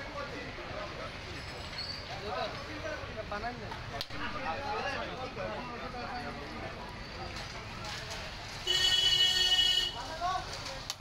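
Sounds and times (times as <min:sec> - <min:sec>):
voices: 0:00.0 - 0:11.0.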